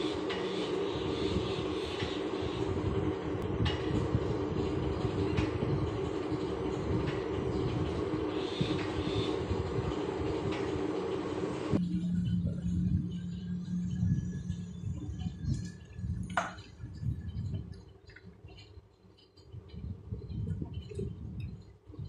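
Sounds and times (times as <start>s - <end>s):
metal lathe running: 0.0s - 12.2s
low hum: 0.0s - 22.0s.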